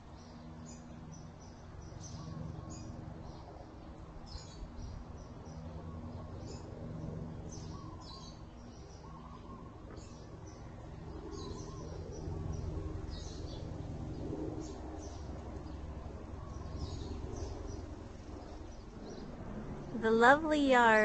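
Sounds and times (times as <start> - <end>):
small birds chirping: 0.1 - 19.3.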